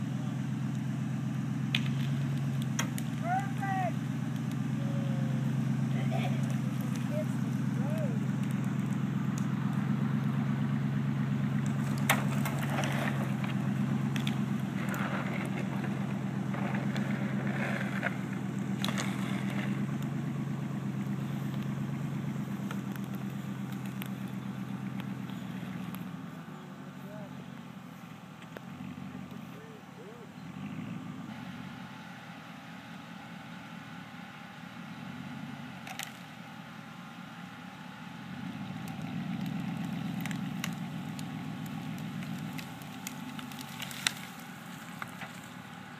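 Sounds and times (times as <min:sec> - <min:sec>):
pickup truck engine running: 0:00.0 - 0:45.9.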